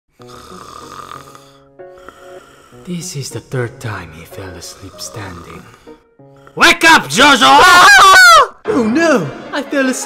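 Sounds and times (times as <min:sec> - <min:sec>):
person snoring: 0:00.1 - 0:03.6, 0:04.2 - 0:06.6
soft background music: 0:00.1 - 0:10.0.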